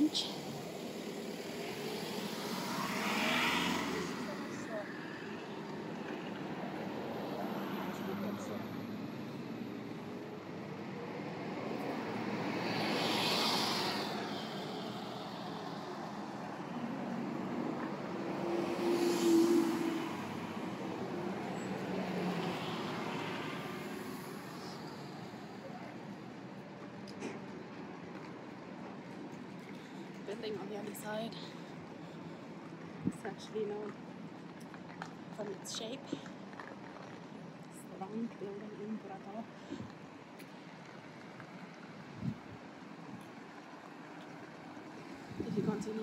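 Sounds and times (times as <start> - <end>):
bus pulling by: 0.0 - 46.0
vehicles passing: 0.0 - 46.0.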